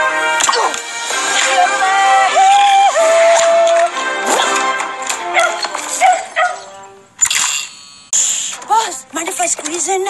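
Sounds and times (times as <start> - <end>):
film music score: 0.0 - 10.0
cartoon dog barking and yipping: 5.3 - 6.7.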